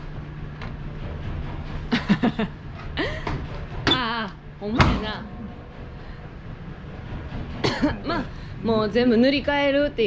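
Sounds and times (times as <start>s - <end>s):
man laughing: 1.9s - 3.3s.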